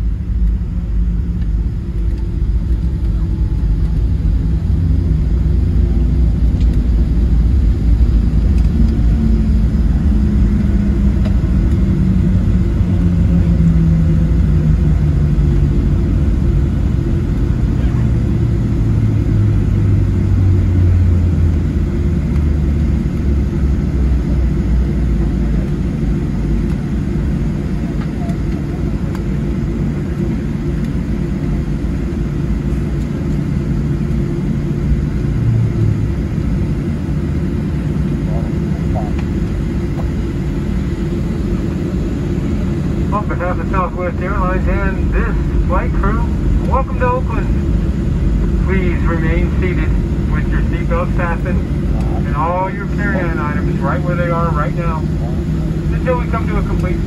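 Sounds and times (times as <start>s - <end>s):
aircraft cabin low rumble: 0.0s - 57.0s
jet engines spooling down: 0.0s - 57.0s.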